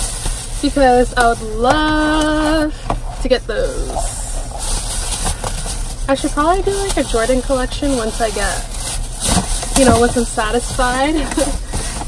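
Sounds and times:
car engine idling rumble: 0.0 - 12.0.

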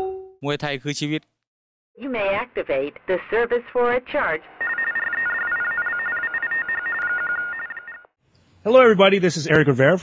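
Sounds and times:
electronic telephone ring: 4.6 - 8.1.

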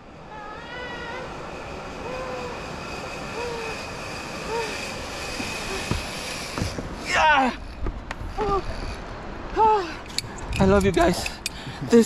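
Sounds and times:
zip-line pulley rolling on cable: 0.0 - 9.2.

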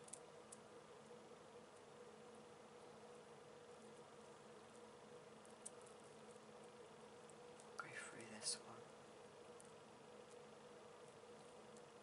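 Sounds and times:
faint hum: 0.0 - 12.0
woman whispering: 7.8 - 8.8.

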